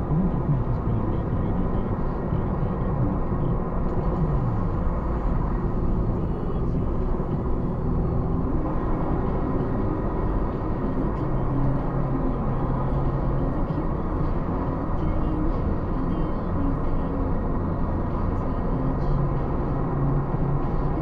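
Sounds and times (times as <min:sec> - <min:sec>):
car engine and tyre noise: 0:00.0 - 0:21.0.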